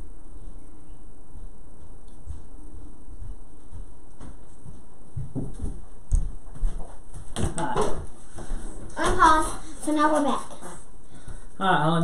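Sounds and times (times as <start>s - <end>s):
household knocks and bumps: 5.2s - 10.3s.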